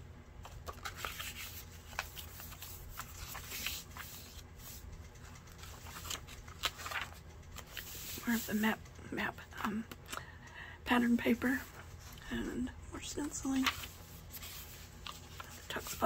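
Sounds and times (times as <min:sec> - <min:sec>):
page turning: 0:00.4 - 0:08.6, 0:13.5 - 0:16.0
paper rustling and ticking: 0:00.4 - 0:10.0, 0:11.1 - 0:12.2, 0:13.2 - 0:16.0.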